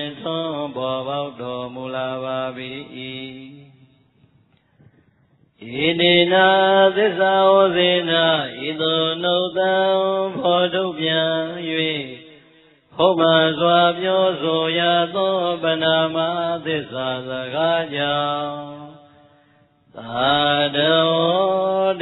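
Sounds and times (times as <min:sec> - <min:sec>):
man chanting melodically: 0:00.0 - 0:03.8, 0:05.6 - 0:12.4, 0:13.0 - 0:19.1, 0:20.0 - 0:22.0.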